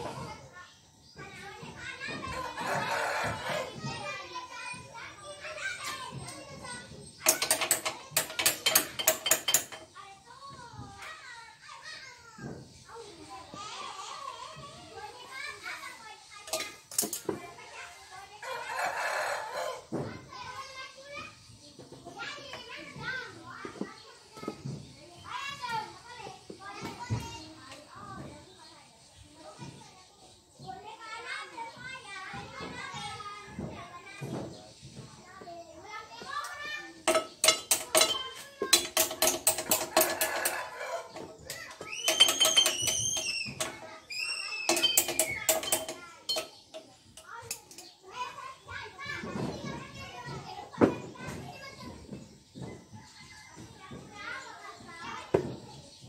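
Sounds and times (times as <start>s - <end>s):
children shouting: 1.2s - 9.2s, 10.0s - 21.3s, 35.3s - 55.6s
metallic clicks and clanks: 7.2s - 9.9s, 16.5s - 17.4s, 37.0s - 47.9s
children squealing: 39.7s - 45.8s.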